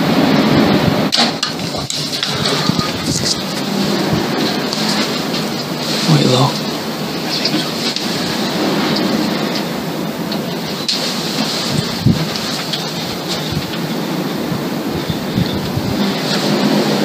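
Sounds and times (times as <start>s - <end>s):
low rumbling: 0.0s - 17.0s
wind noise on microphone: 0.0s - 17.0s.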